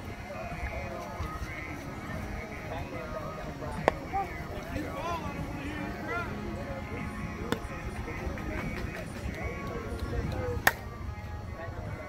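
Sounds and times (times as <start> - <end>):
chatter of players and spectators: 0.0 - 12.0
bat hitting ball crack: 3.8 - 4.2, 7.5 - 7.8, 10.0 - 10.9.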